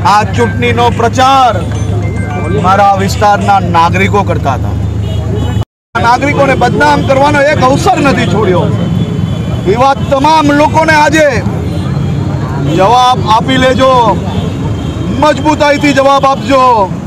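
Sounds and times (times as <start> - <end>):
man speaking: 0.0 - 1.7, 2.3 - 4.8, 6.0 - 8.9, 9.6 - 11.5, 12.6 - 14.3.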